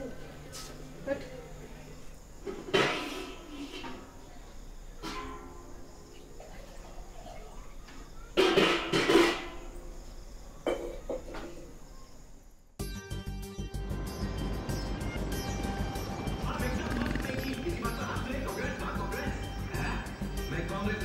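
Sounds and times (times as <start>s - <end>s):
people talking: 0.0s - 2.1s, 16.4s - 21.0s.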